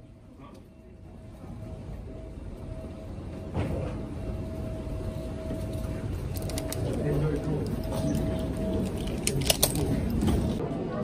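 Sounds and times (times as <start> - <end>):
low rumble of terminal noise: 0.0 - 11.0
mid-pitched hum: 0.0 - 11.0.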